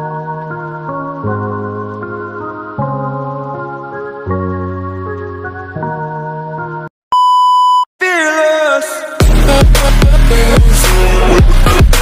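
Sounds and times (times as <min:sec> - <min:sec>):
keyboard music with held chords: 0:00.0 - 0:06.9
high-pitched censor beep: 0:07.1 - 0:07.9.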